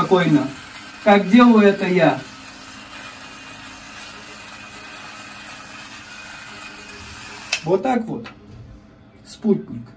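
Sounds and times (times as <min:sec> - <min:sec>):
mechanical shaver buzzing: 0:00.0 - 0:08.0.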